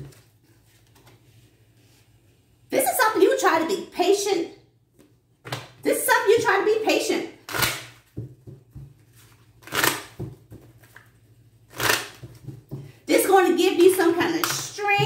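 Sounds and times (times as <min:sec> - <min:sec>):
person talking: 0:13.1 - 0:15.0.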